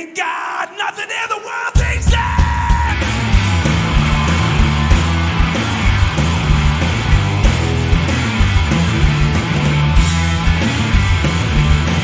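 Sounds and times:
live rock band playing: 2.1s - 12.0s.

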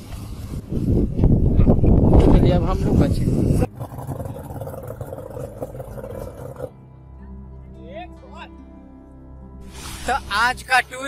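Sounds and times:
wind noise on microphone: 0.0s - 6.7s.

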